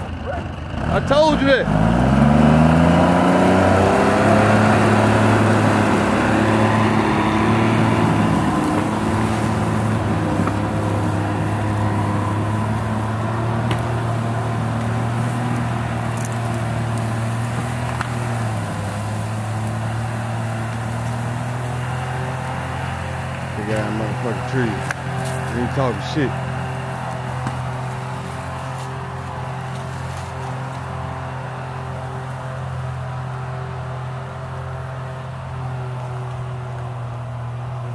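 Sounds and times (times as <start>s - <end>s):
diesel engine under load: 0.0s - 37.9s.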